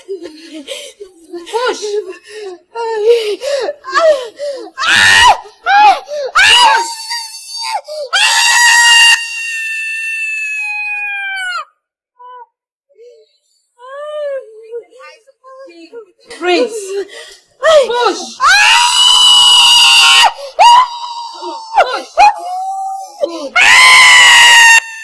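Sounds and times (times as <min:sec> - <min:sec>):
woman screaming: 0:04.8 - 0:11.7, 0:18.0 - 0:25.0.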